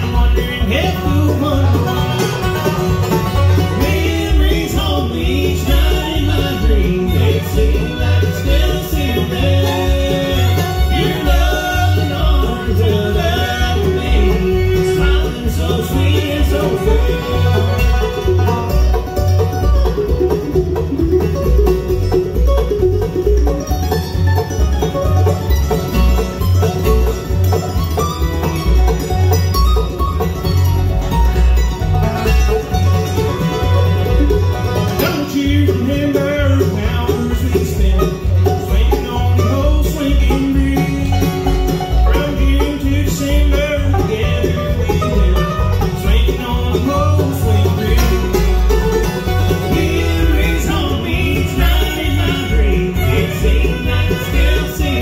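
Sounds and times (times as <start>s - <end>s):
banjo: 0.0s - 55.0s
bluegrass band music: 0.0s - 55.0s.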